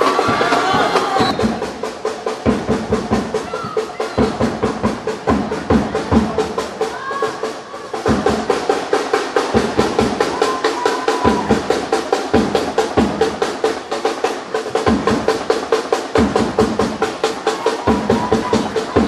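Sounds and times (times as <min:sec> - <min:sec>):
drum-heavy music: 0:00.0 - 0:19.0.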